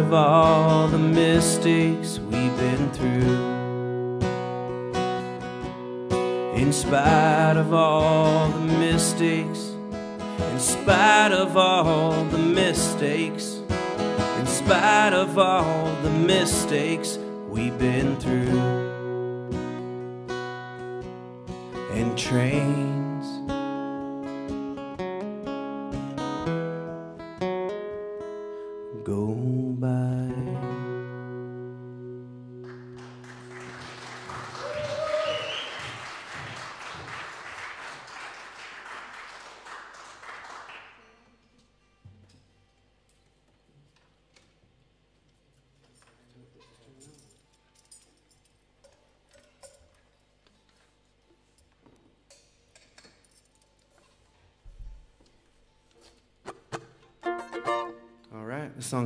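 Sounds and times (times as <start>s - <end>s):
acoustic guitar country song: 0.0s - 34.5s, 56.5s - 59.0s
audience applause: 32.7s - 41.0s
person whooping: 34.4s - 36.0s.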